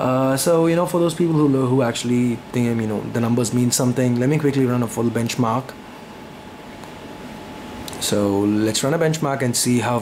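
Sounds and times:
low hiss: 0:00.0 - 0:10.0.

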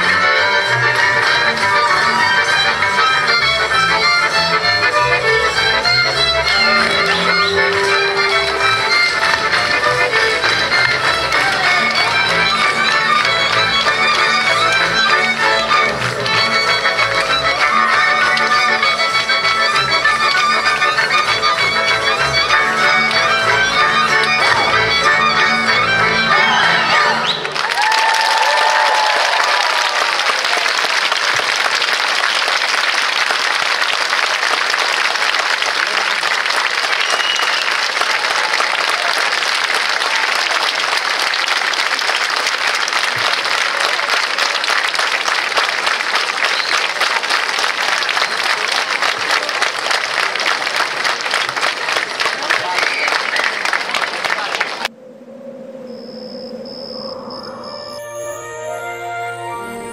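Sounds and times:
soft music: 0:00.0 - 0:27.2, 0:57.9 - 0:59.9
audience applauding: 0:00.0 - 0:54.9.

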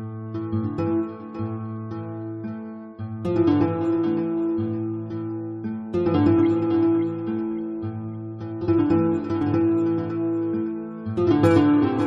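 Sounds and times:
acoustic guitar plucked notes: 0:00.0 - 0:12.0.

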